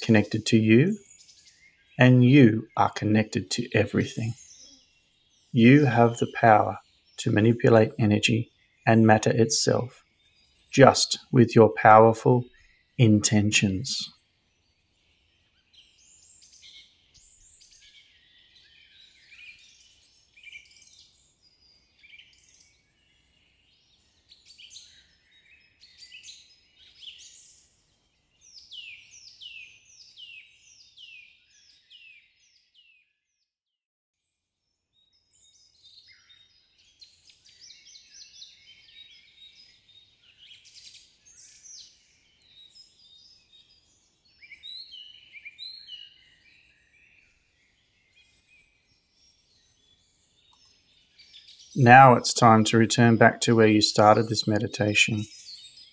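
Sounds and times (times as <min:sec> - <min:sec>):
songbirds chirping and trilling: 0:00.0 - 0:33.4, 0:34.2 - 0:55.9.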